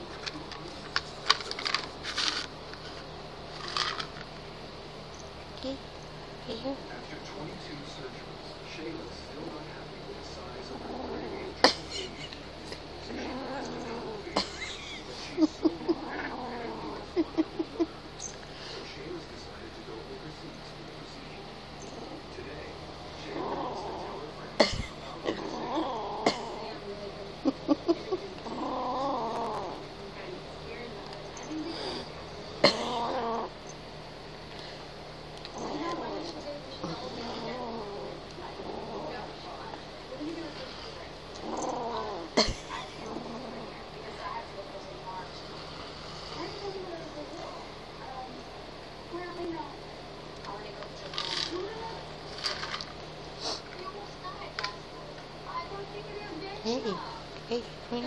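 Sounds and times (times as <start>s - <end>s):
kitten growling: 9.1s - 18.4s, 21.8s - 33.7s, 35.4s - 48.4s.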